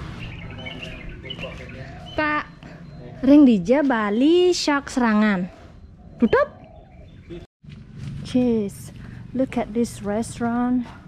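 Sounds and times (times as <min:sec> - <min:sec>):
small birds chirping: 0:00.0 - 0:07.5.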